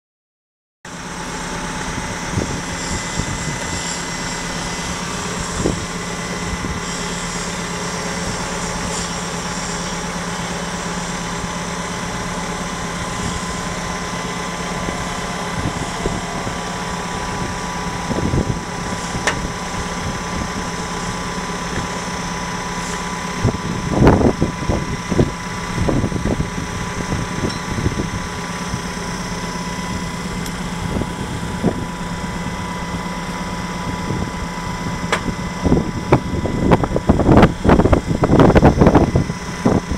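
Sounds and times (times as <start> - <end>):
heavy machinery humming: 0.9 - 39.9.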